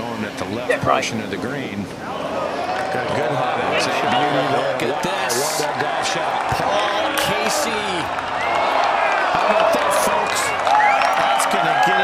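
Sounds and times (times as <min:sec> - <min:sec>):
crowd shouting and cheering: 0:02.0 - 0:12.0.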